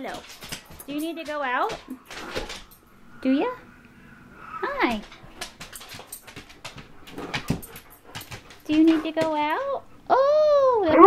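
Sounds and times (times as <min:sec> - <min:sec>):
dog claws clicking on wood floor: 0:00.0 - 0:03.0, 0:04.7 - 0:09.8.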